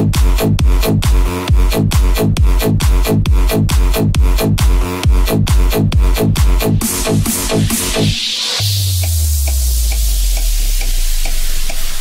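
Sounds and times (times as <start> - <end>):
deep sub-bass note: 0.0 - 12.0.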